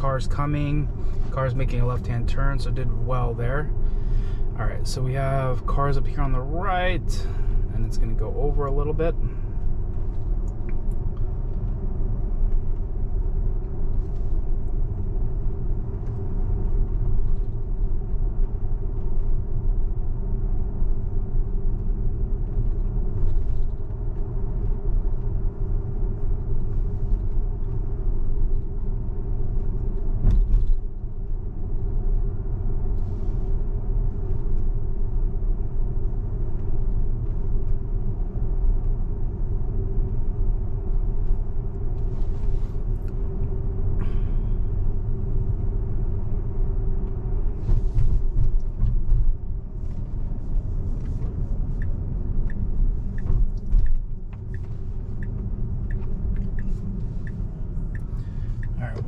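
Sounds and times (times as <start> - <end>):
road and tyre rumble: 0.0 - 59.0.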